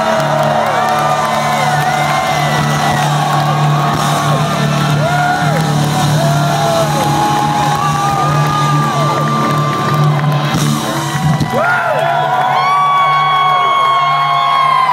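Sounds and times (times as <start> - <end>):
crowd cheering and whooping: 0.0 - 14.9
rock band playing live: 0.1 - 11.8.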